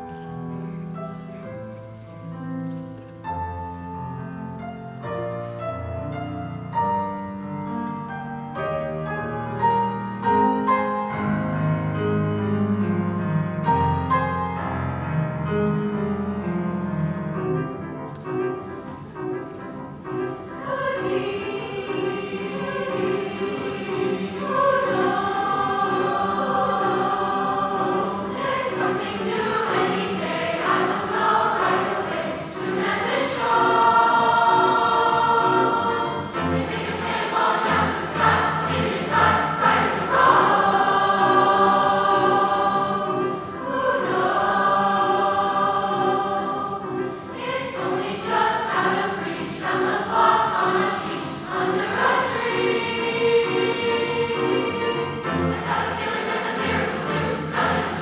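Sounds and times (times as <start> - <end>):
choir singing in parts: 19.9 - 58.0.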